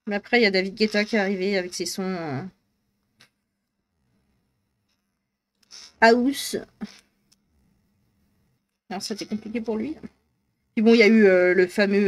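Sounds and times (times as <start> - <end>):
person speaking: 0.0 - 2.6, 8.9 - 10.2
short breathy hiss: 5.6 - 6.0.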